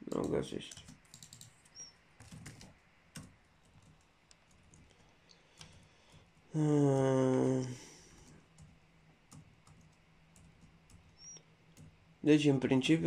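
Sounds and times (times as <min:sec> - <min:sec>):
computer keyboard keystrokes: 0:00.0 - 0:04.9, 0:08.5 - 0:11.1.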